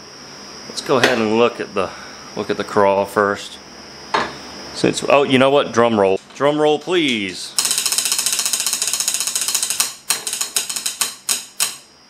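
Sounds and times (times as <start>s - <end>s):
wooden sticks drumming on metal: 7.8s - 11.8s.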